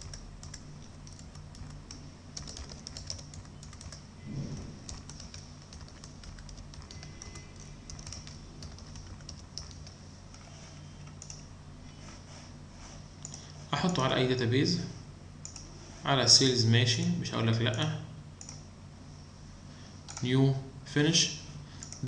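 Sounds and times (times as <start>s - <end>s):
computer keyboard typing: 0.0s - 11.4s, 15.4s - 15.7s, 20.1s - 20.3s, 21.8s - 22.0s
low steady hum: 0.0s - 22.0s.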